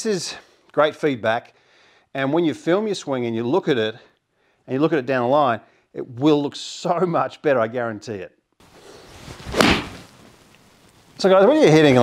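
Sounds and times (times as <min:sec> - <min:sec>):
golf club swishing: 0:08.6 - 0:10.5
golf club striking ball: 0:09.5 - 0:10.0.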